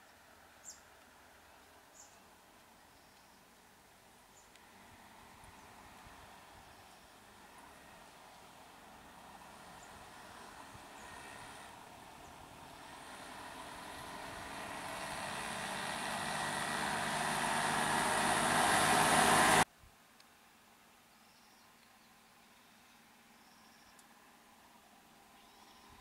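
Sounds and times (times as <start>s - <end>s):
auto-rickshaw engine approaching: 4.4s - 19.7s.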